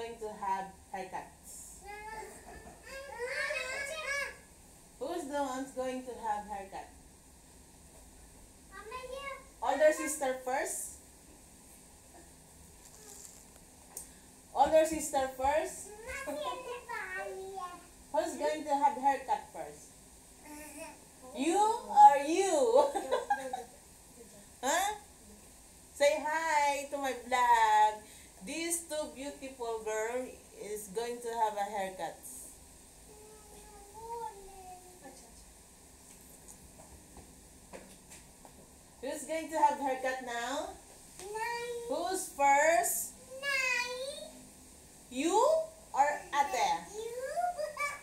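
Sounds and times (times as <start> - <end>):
child's wordless voice: 1.8 - 4.4, 8.7 - 10.1, 15.8 - 17.9, 33.1 - 35.4, 41.2 - 41.9, 43.2 - 44.4, 46.9 - 48.0.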